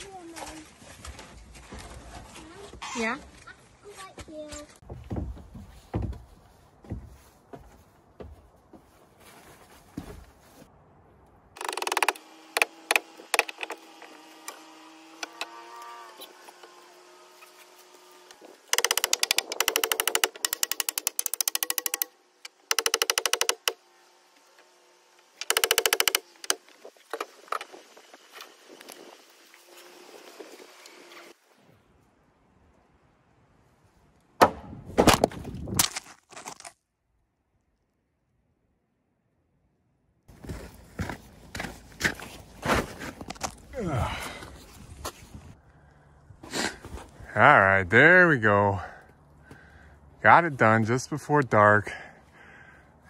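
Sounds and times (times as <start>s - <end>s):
low knocks and handling: 4.8s - 8.8s
impact driver hammering clicks: 22.7s - 23.8s, 25.4s - 26.6s.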